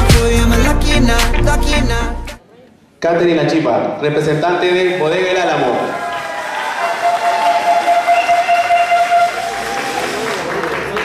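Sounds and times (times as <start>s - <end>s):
audience applauding and cheering: 5.8s - 11.0s.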